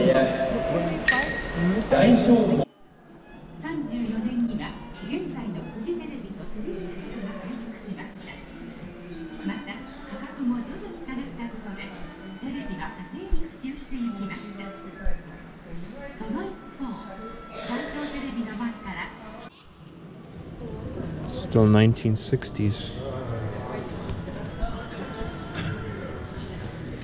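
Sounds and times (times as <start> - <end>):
background voices talking: 20.8 - 27.0.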